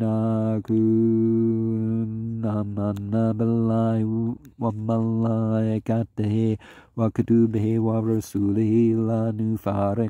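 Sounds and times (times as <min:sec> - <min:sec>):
person chanting recitation: 0:00.0 - 0:10.0.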